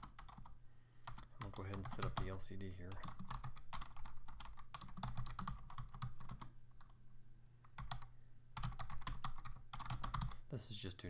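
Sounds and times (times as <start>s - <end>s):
low steady hum: 0.0s - 11.0s
keyboard typing clicks: 3.0s - 7.0s, 7.7s - 10.4s.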